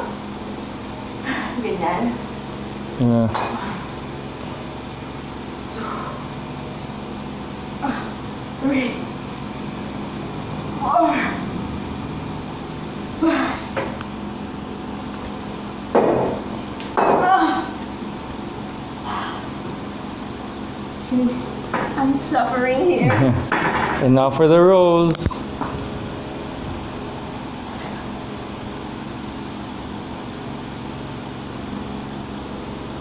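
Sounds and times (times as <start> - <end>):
mechanical hum: 0.0 - 33.0.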